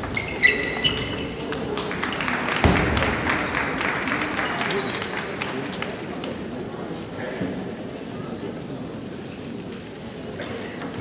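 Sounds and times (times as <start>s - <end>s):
audience applauding: 0.9s - 6.4s.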